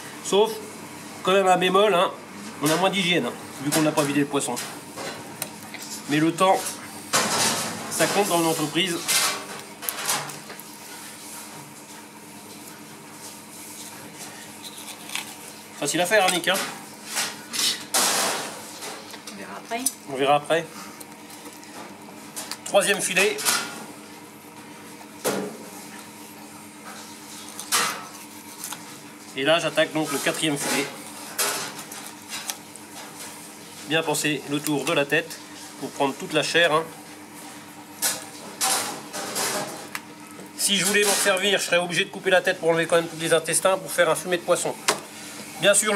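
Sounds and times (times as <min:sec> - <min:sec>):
steady kitchen hum: 0:00.0 - 0:45.9
knife scraping fish bone: 0:13.8 - 0:15.7, 0:27.3 - 0:29.0.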